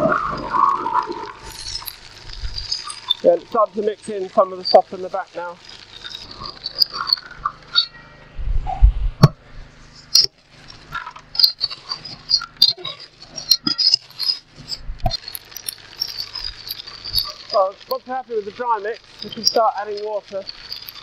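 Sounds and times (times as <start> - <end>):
shovel scraping mixer drum: 0.0 - 8.0, 9.2 - 21.0
gravel rattling against drum: 0.0 - 8.2, 9.2 - 21.0
electric cement mixer running: 0.0 - 8.4, 9.3 - 21.0.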